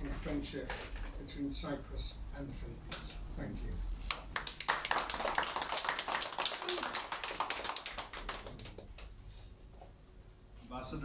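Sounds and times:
small group applauding: 4.0s - 9.2s.

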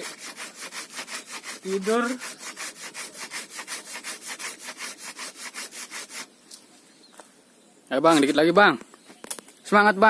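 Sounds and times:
hand saw cutting a branch: 0.0s - 6.4s.

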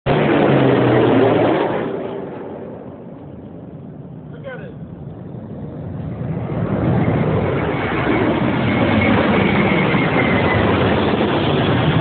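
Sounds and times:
airplane engines passing overhead: 0.1s - 12.0s.

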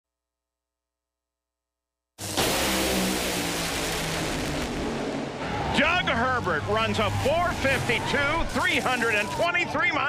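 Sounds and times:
dragster engines at full throttle: 2.2s - 9.7s
man's voice: 5.7s - 10.0s.

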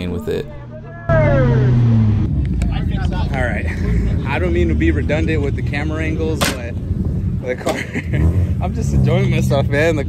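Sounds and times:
low steady engine rumble: 0.0s - 10.0s.

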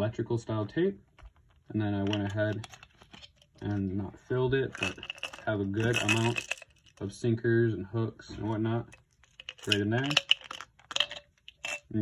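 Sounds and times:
metal clicking on plastic: 8.9s - 11.9s.

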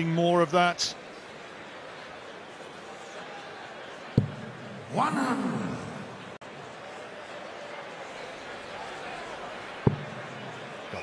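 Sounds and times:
crowd murmur: 1.0s - 11.0s.

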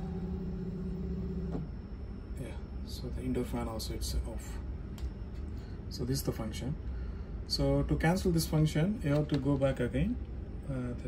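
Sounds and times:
fan motor humming: 0.0s - 11.0s.

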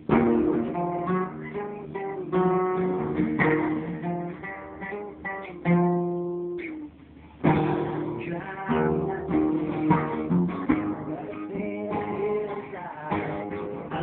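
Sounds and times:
acoustic guitar playing: 0.0s - 14.0s.

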